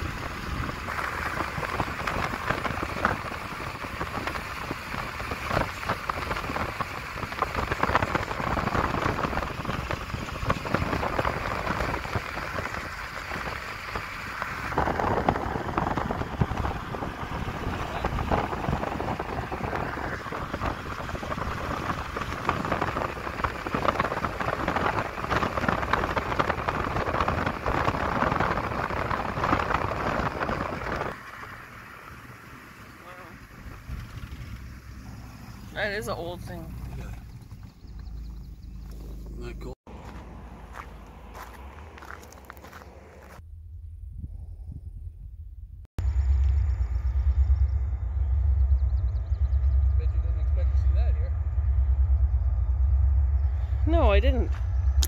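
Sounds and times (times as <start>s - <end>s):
wind gusts hitting microphone: 0.0s - 39.4s
car road noise at speed: 0.0s - 44.4s, 45.6s - 55.0s.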